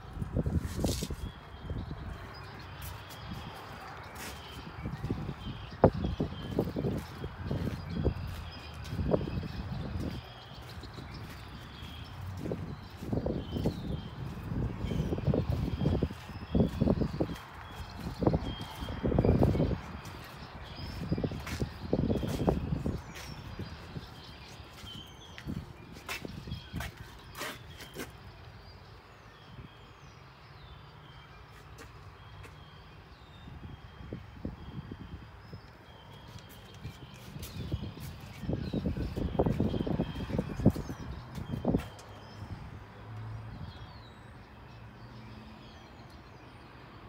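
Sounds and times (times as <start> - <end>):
footsteps on concrete: 2.2 - 28.2, 31.5 - 32.6, 36.2 - 42.2.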